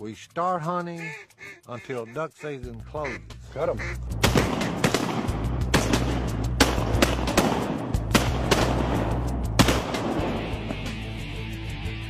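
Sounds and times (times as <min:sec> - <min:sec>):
background music: 0:00.0 - 0:12.0
shotgun shots: 0:04.2 - 0:10.6.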